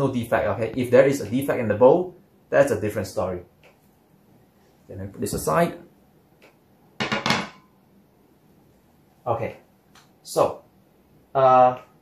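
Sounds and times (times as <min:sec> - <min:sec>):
bow knocking and clattering down: 0:07.0 - 0:07.7.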